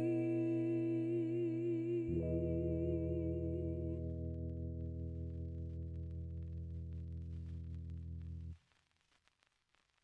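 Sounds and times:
sustained low final chord: 0.0s - 8.4s.

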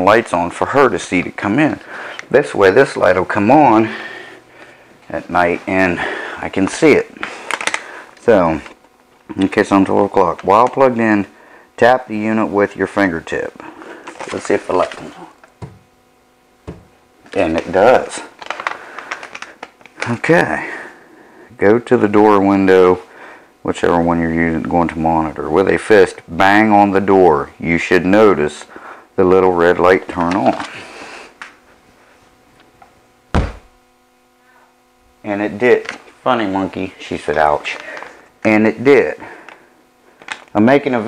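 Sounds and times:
fist banging on door: 33.3s - 33.7s.

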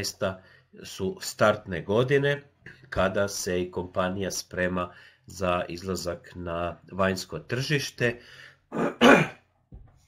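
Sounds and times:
man clearing his throat: 8.7s - 9.5s.

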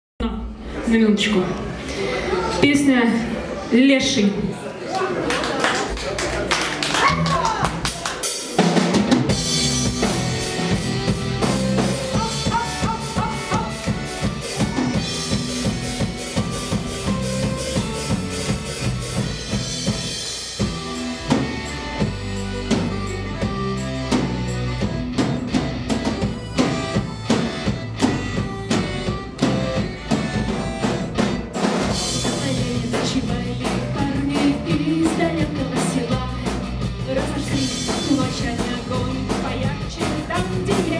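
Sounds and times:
busy drumming: 5.7s - 40.9s
bass guitar: 6.8s - 40.9s
electric guitar: 8.3s - 40.9s.

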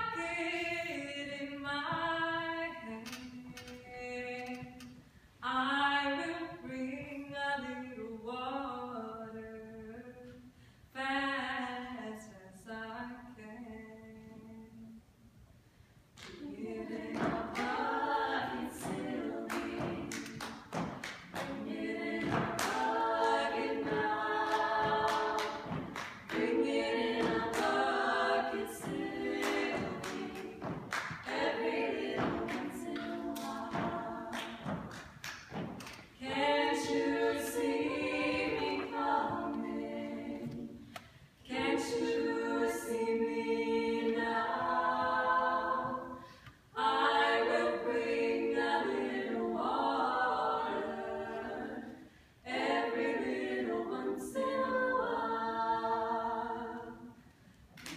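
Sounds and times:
women singing a cappella: 0.0s - 15.2s, 16.2s - 35.1s, 36.0s - 57.9s
hand claps and slaps: 18.8s - 23.0s, 23.8s - 27.8s, 28.8s - 36.2s, 57.7s - 57.9s.

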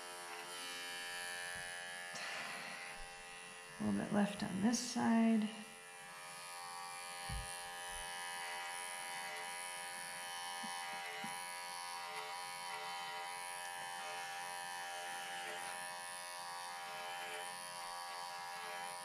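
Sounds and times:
electric clippers buzzing: 0.0s - 19.0s.

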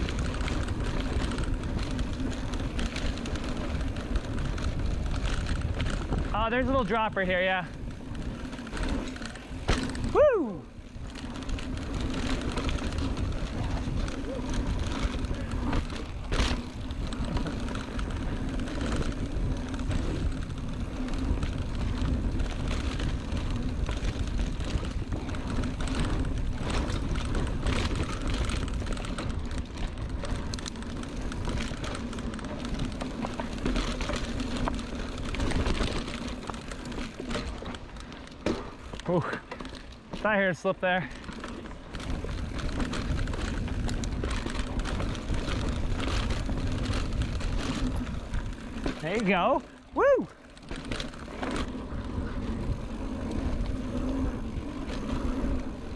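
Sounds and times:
wind rumbling on microphone: 0.0s - 39.0s, 41.6s - 55.9s
bike chain and frame rattling: 0.0s - 55.9s
bike tyres humming on dirt: 0.0s - 55.9s.

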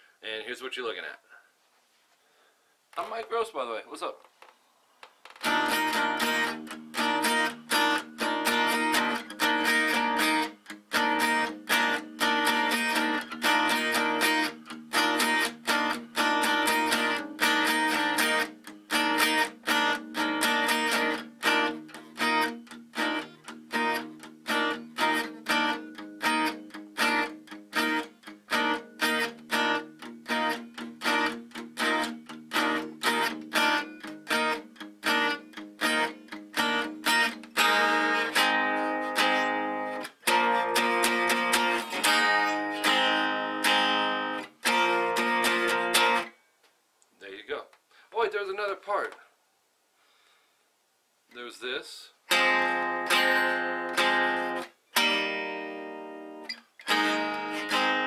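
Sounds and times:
acoustic guitar strumming chords: 5.4s - 46.4s, 52.3s - 58.0s.

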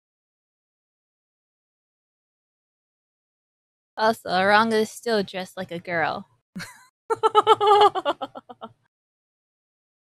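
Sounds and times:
woman giggling: 6.6s - 8.7s.

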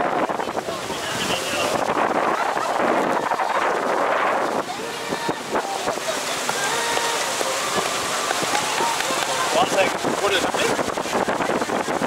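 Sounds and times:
water splashing along boat hull: 0.0s - 12.0s.

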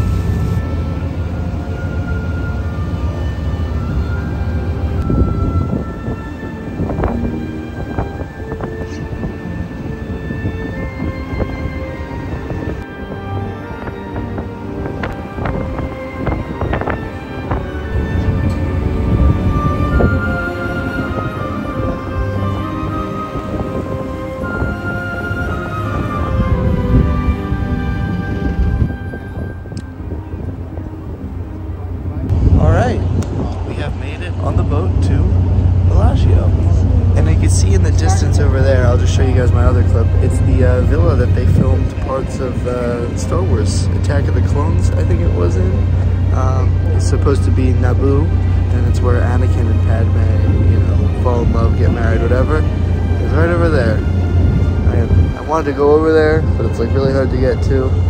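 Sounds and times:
background music with melody: 0.0s - 32.5s, 34.4s - 58.0s
steady low rumble: 0.0s - 58.0s.

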